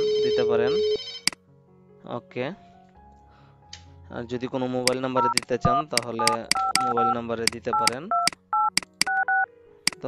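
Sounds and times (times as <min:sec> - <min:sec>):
sharp clicks: 0:04.9 - 0:09.3
keypad dialing tones: 0:04.9 - 0:10.0.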